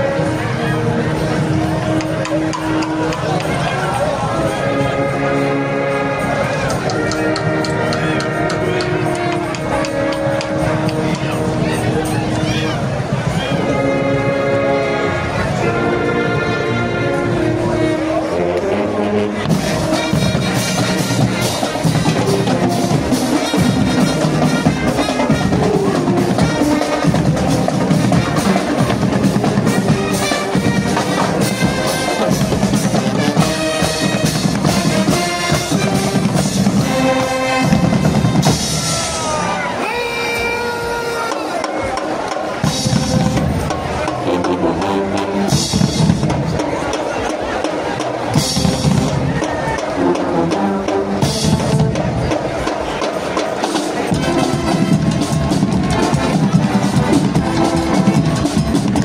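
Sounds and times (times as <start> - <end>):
marching snare and bass drums: 0.0 - 4.7, 6.3 - 14.6, 17.5 - 59.0
brass melody: 0.0 - 59.0.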